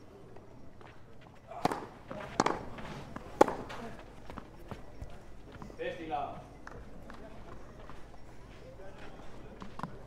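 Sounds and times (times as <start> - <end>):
outdoor background noise: 0.0 - 10.0
soft thuds on clay court: 0.3 - 5.8, 9.0 - 10.0.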